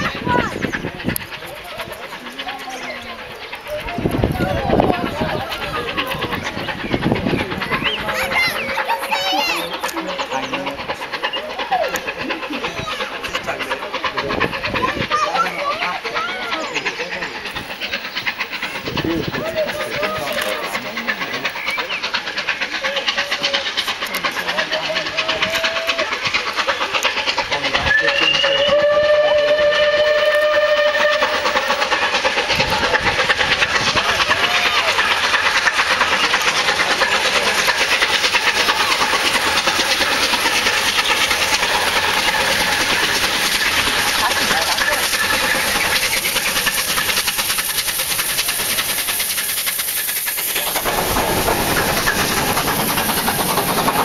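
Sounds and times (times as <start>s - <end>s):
coaches rumbling on rails: 0.0s - 54.0s
steam locomotive exhaust: 0.0s - 54.0s
steam locomotive whistle: 27.8s - 31.6s.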